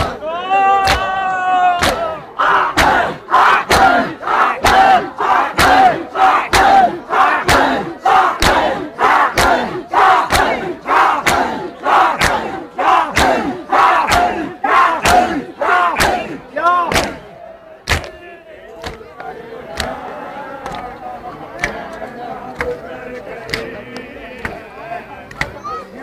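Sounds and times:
crowd shouting together: 0.0s - 26.0s
chest beating slaps: 0.8s - 1.1s, 1.8s - 2.1s, 12.2s - 12.6s, 16.0s - 18.2s.

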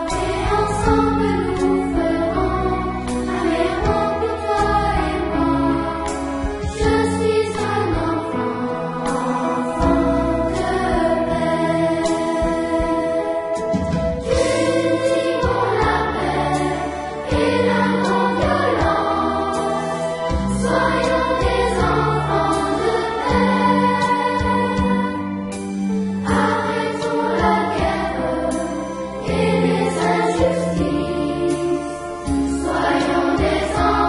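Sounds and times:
choir singing: 0.0s - 34.0s
instrumental backing music: 0.0s - 34.0s.

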